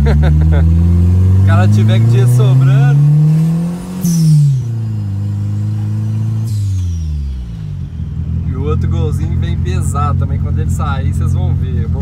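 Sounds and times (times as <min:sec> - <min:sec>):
car engine decelerating: 0:00.0 - 0:12.0.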